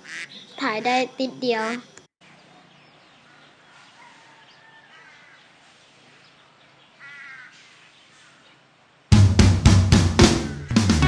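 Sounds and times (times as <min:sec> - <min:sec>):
crows cawing: 0:00.0 - 0:00.4, 0:03.2 - 0:05.6, 0:07.0 - 0:08.5.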